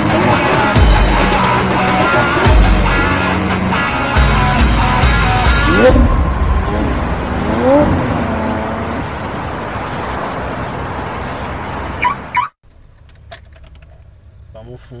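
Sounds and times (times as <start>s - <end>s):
car engine revving: 0.0s - 12.4s.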